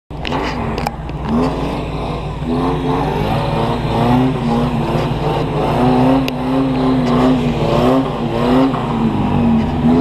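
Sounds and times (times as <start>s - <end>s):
truck engine revving under load: 0.2s - 10.0s.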